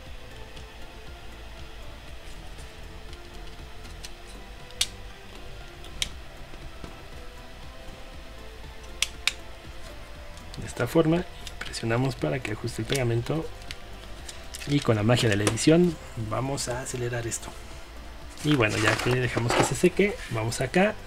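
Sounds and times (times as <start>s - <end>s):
quiet background music: 0.0s - 21.0s.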